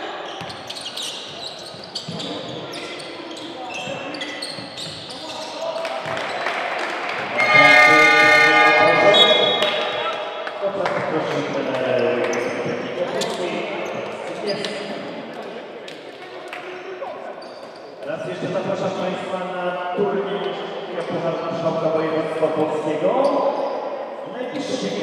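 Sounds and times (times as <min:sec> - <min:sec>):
people's voices in a hall: 0:00.0 - 0:25.0.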